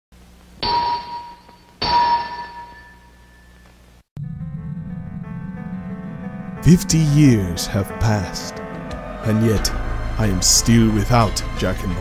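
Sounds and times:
metallic bell ding: 0.6 - 3.6.

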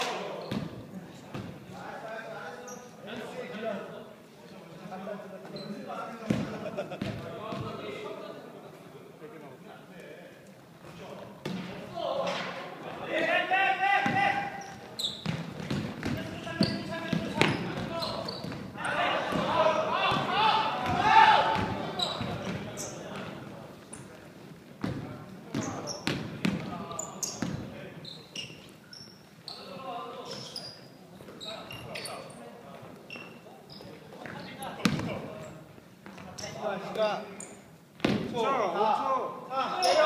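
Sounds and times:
players shouting: 16.2 - 22.5.

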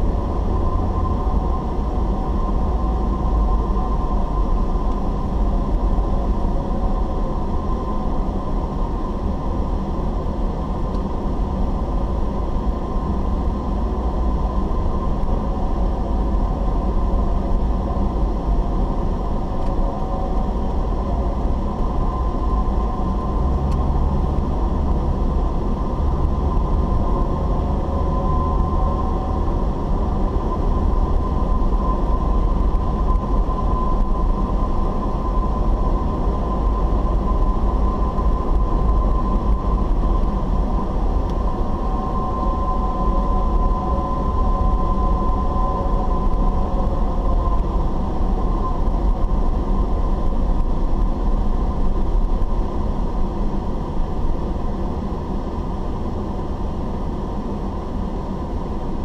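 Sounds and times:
engine and tyre rumble: 0.0 - 59.0
thin steady whine: 0.0 - 59.0.

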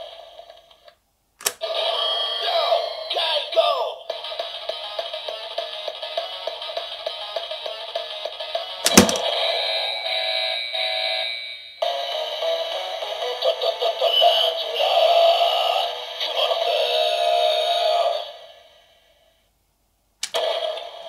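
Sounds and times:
plastic clack: 8.9 - 9.2.

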